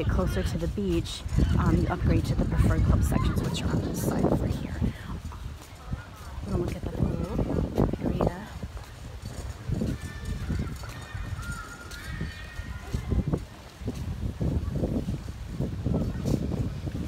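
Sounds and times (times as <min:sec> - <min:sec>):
footsteps on stone: 0:00.3 - 0:17.0.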